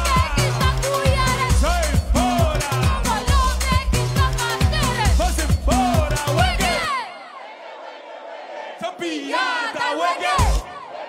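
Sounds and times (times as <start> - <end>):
club dance music: 0.0 - 7.2, 8.8 - 11.0.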